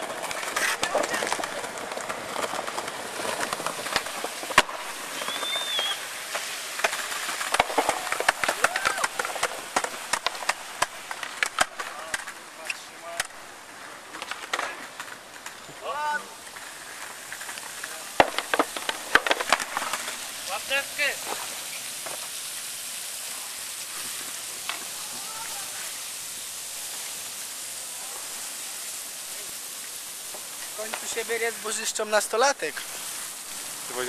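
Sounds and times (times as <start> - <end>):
skateboard wheels rolling on stone: 0.0 - 34.0.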